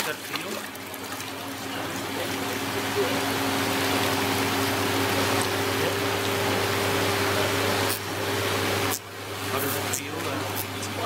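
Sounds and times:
water splashing in a plastic tub: 0.0 - 7.5
steady low hum: 0.0 - 11.0.

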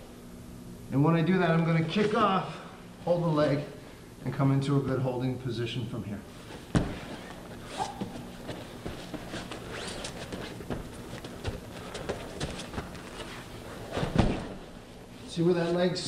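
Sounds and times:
grapplers scuffling on foam mats: 6.4 - 14.8.

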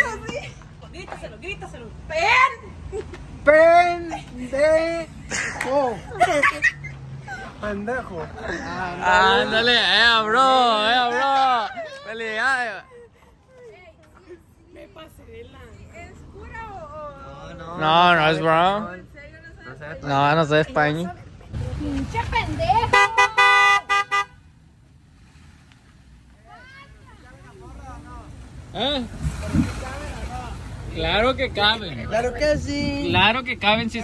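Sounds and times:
young people laughing: 4.0 - 9.2, 10.9 - 13.7.

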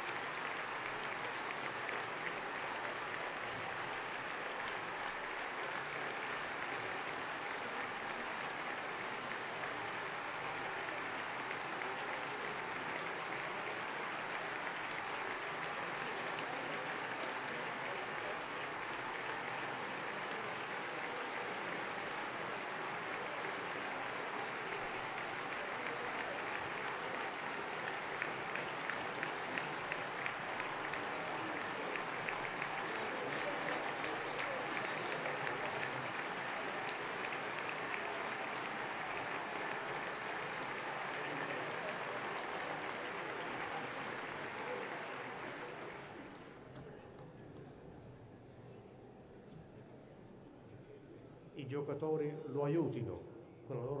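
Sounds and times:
rhythmic sharp claps: 0.0 - 46.2
large crowd applauding: 0.0 - 47.0.

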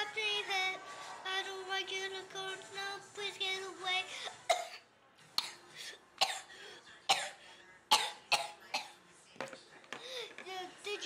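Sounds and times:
child coughing: 4.5 - 4.8, 6.2 - 6.5, 7.1 - 9.0.

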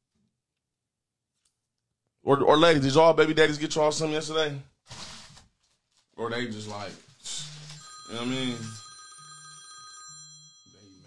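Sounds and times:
telephone ringing: 7.4 - 11.0.

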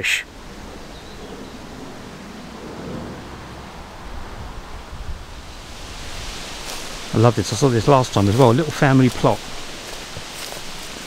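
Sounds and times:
wind on microphone: 0.2 - 11.0.

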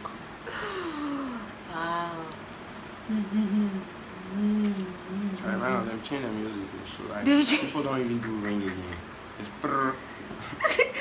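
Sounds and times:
person humming: 3.1 - 5.6.

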